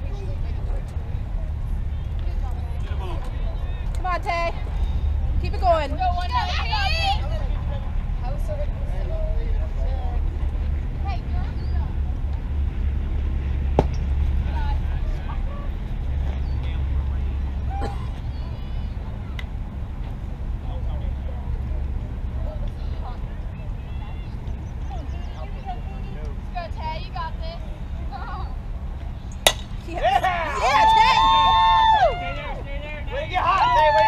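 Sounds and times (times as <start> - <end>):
distant voices: 0.0 - 34.0
low wind rumble: 0.0 - 34.0.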